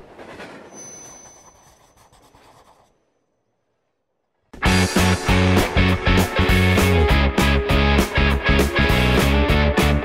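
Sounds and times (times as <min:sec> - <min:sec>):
thin high ringing tone: 0:00.7 - 0:02.0.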